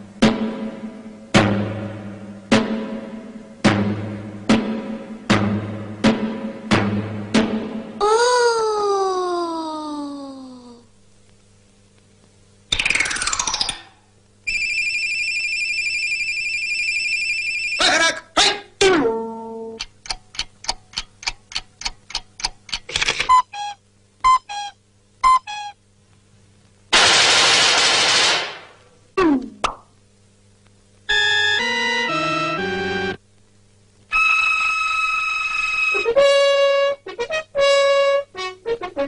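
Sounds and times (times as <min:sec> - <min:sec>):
high ringing tone: 0:14.5 - 0:17.8.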